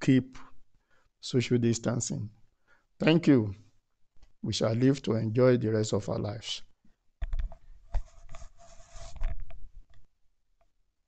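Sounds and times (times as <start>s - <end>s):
scratchy rustling and scraping: 7.4s - 9.7s.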